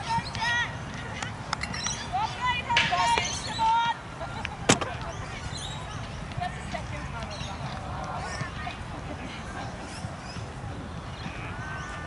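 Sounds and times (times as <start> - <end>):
football being kicked: 4.7 - 5.0.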